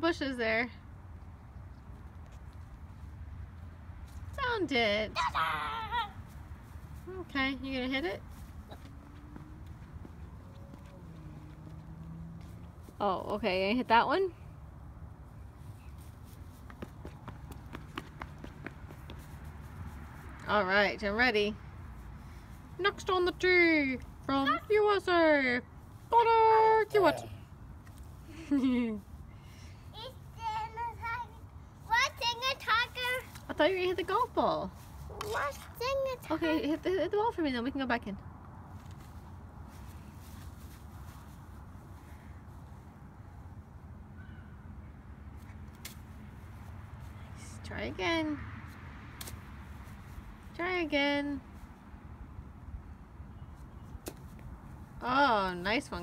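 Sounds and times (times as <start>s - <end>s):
toddler running footsteps: 8.0s - 13.0s, 16.0s - 20.3s.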